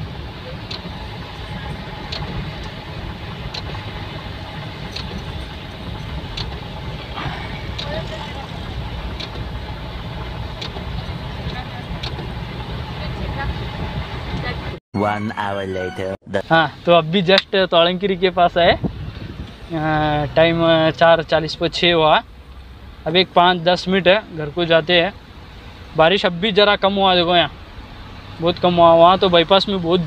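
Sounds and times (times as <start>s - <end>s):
road and tyre noise in car cabin: 0.0s - 14.8s, 16.4s - 30.0s.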